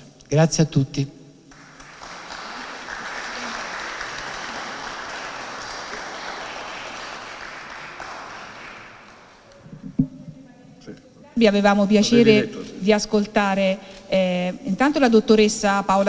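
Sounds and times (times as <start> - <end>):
audience applauding: 1.5 - 9.6.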